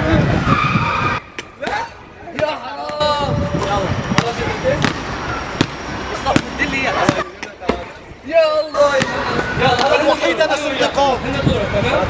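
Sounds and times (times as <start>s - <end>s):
voices calling out: 0.0s - 12.0s
basketball bouncing on court: 4.2s - 7.8s.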